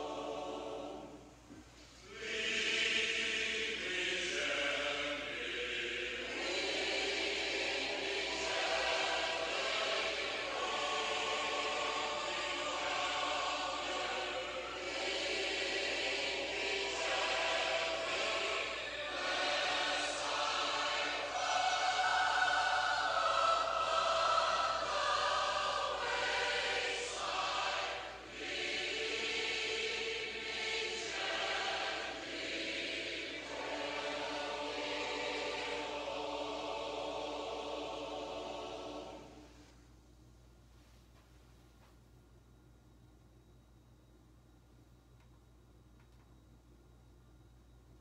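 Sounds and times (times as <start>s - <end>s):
choir singing a hymn: 0.0s - 39.7s.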